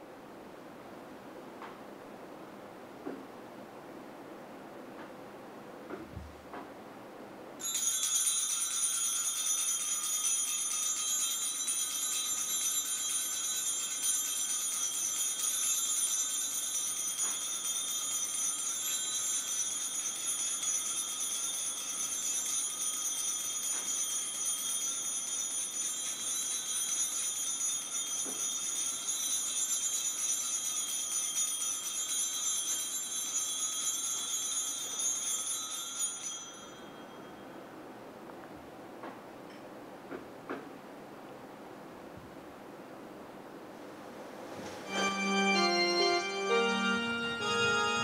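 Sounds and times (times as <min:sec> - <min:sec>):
handbells jingling: 0:07.6 - 0:37.3, 0:45.0 - 0:48.0.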